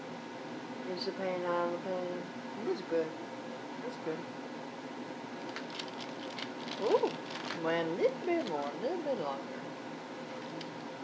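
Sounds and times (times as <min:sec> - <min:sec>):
paper crinkling and rustling: 0:05.4 - 0:07.6, 0:08.3 - 0:08.7, 0:10.3 - 0:10.9
woman exclaiming: 0:06.8 - 0:07.2.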